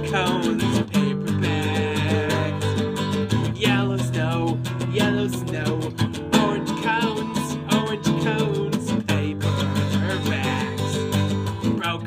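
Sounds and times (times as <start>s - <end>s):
acoustic guitar strummed: 0.0s - 12.0s
man singing: 0.0s - 12.0s.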